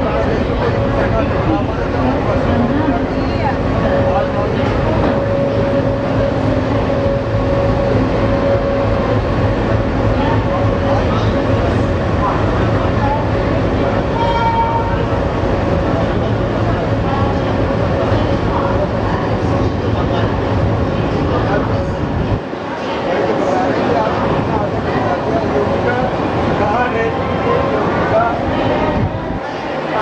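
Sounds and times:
steady tone: 0:00.0 - 0:23.0
train wheels rumbling on rail: 0:00.0 - 0:30.0.

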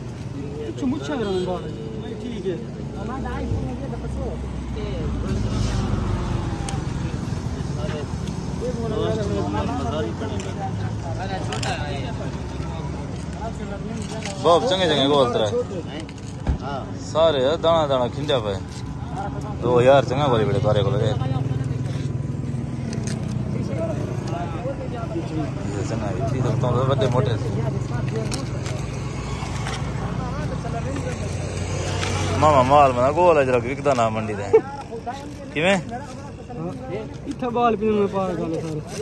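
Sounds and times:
men talking: 0:00.0 - 0:39.0
road traffic rumble: 0:00.0 - 0:39.0.

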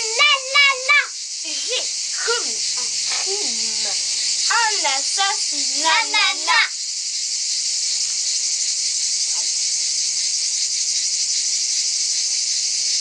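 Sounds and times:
insects buzzing: 0:00.0 - 0:13.0.

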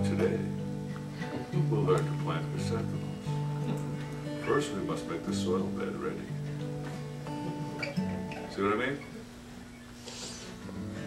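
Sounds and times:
acoustic guitar notes ringing: 0:00.0 - 0:09.9.

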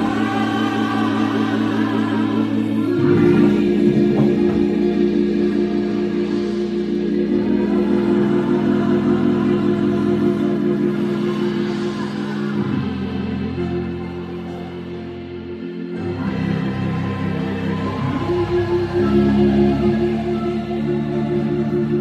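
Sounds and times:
electronic keyboard chords: 0:00.0 - 0:22.0.

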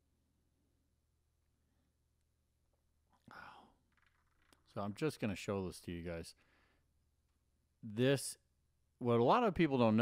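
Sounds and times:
person whispering: 0:03.2 - 0:03.8.

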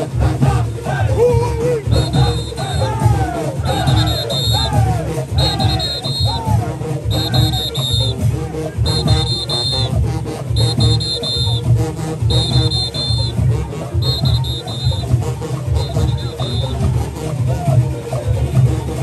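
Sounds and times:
heavy drumming: 0:00.0 - 0:17.8
marching brass band: 0:00.0 - 0:19.0
high shrill whistle blasts: 0:02.0 - 0:02.9, 0:03.8 - 0:04.7, 0:05.4 - 0:06.4, 0:07.1 - 0:08.2, 0:08.9 - 0:09.9, 0:10.6 - 0:11.7, 0:12.3 - 0:13.4, 0:14.0 - 0:15.1, 0:15.8 - 0:16.7.

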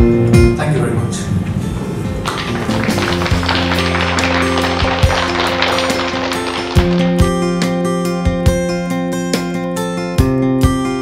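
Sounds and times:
acoustic guitar music: 0:01.5 - 0:11.0
applause: 0:02.2 - 0:07.3.

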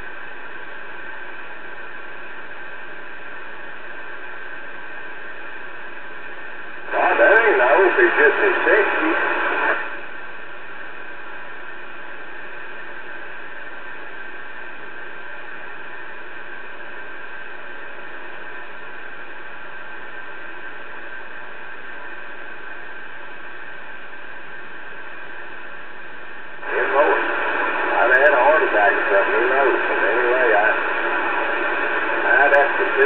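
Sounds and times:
faint steady tones: 0:00.0 - 0:33.0
radio static hiss: 0:00.0 - 0:33.0
voice over radio: 0:06.9 - 0:09.9, 0:26.6 - 0:33.0.

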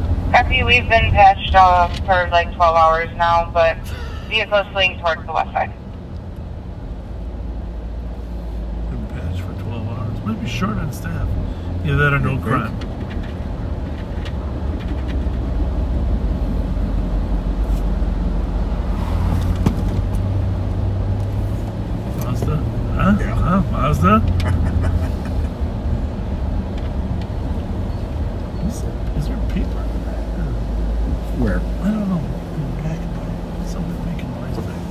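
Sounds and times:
engine and road rumble: 0:00.0 - 0:34.9.

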